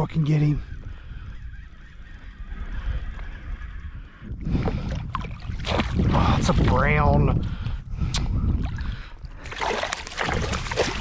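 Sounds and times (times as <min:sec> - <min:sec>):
wind on microphone: 0:00.0 - 0:11.0
fish splashing in water: 0:09.4 - 0:11.0.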